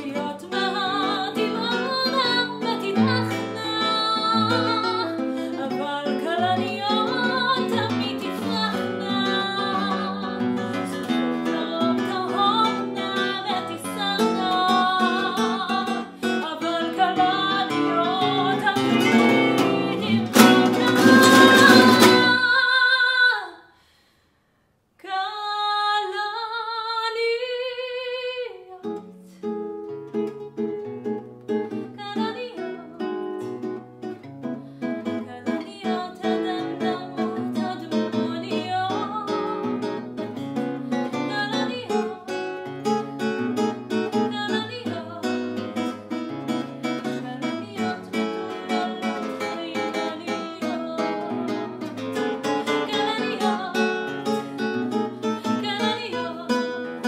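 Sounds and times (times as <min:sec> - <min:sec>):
classical guitar playing: 0:00.0 - 0:22.8, 0:28.4 - 0:57.0
soprano singing with vibrato: 0:00.0 - 0:23.7, 0:25.0 - 0:29.0, 0:31.7 - 0:33.5, 0:35.1 - 0:43.0, 0:43.9 - 0:45.9, 0:46.9 - 0:57.0.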